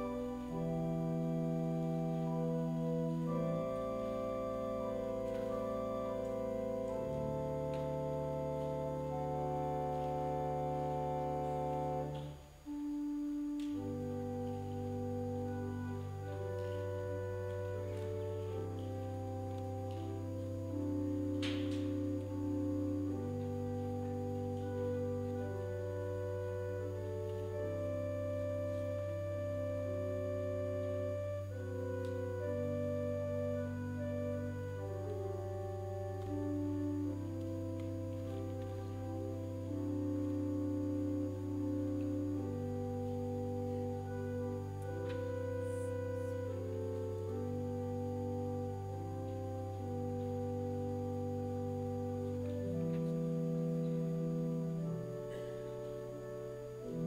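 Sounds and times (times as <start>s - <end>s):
church organ chords: 0.0s - 57.0s.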